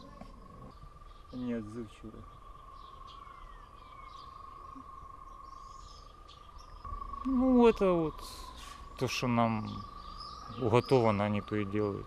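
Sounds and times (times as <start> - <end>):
faint bird chirps: 0.0 - 12.0
insects trilling: 0.0 - 12.0.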